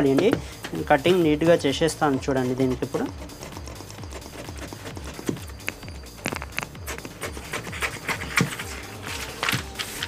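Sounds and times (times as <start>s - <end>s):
background music with low beat: 0.0s - 10.0s
scissors cutting paper: 2.3s - 10.0s.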